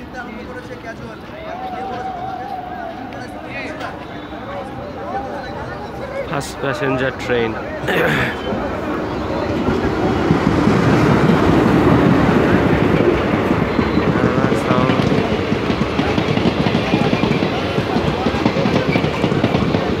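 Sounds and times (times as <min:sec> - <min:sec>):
passenger train rumbling past: 0:00.0 - 0:20.0.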